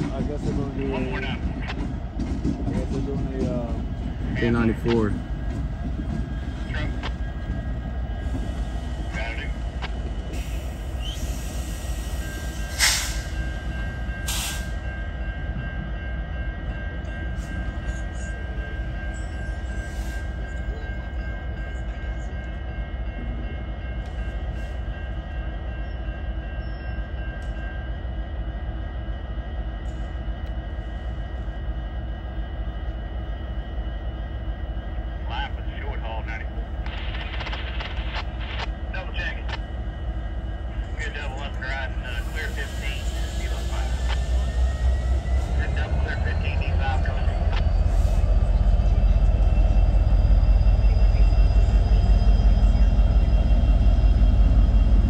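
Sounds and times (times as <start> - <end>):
diesel locomotive engine drone: 0.0 - 55.0
thin steady whine: 24.8 - 55.0.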